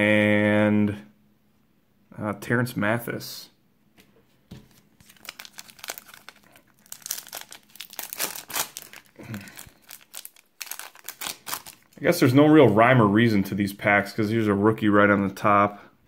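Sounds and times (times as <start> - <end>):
foil card pack crinkling: 4.7 - 12.0.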